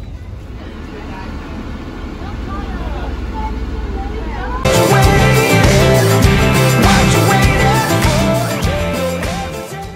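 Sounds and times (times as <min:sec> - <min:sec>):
faint voices: 0:00.0 - 0:04.7
boat engine rumble: 0:00.0 - 0:08.9.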